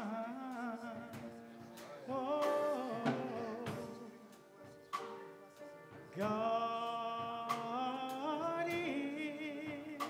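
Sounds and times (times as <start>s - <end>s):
man singing solo: 0.0s - 4.7s, 6.1s - 10.0s.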